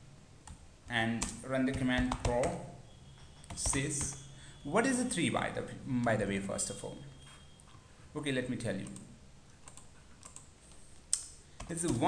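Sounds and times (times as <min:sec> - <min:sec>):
computer keyboard keystrokes: 0:01.2 - 0:02.6, 0:03.5 - 0:04.2, 0:08.8 - 0:12.0.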